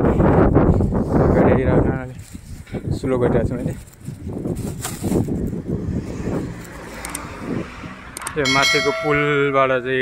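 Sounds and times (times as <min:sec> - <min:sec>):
wind buffeting microphone: 0:00.0 - 0:09.0.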